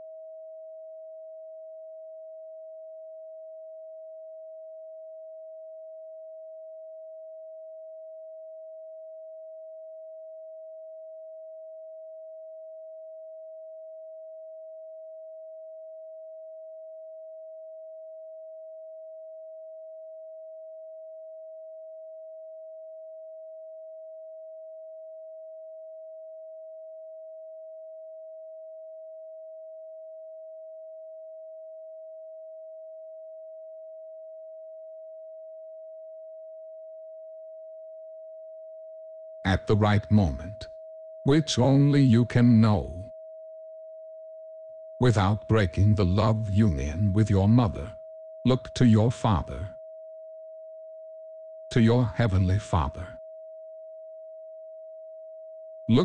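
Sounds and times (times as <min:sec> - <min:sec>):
steady pure sine tone: 0:00.0 - 0:47.2, 0:47.8 - 0:48.7, 0:49.6 - 0:51.7, 0:53.2 - 0:55.8.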